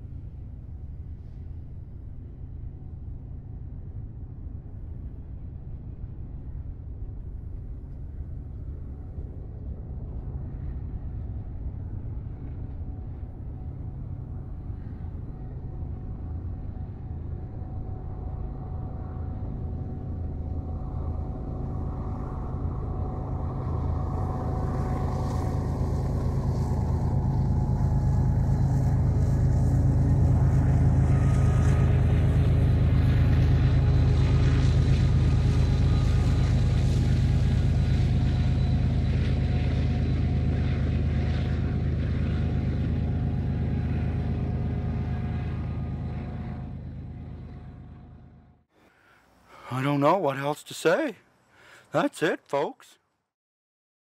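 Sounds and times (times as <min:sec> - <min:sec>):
diesel locomotive engine drone: 0:00.0 - 0:52.7.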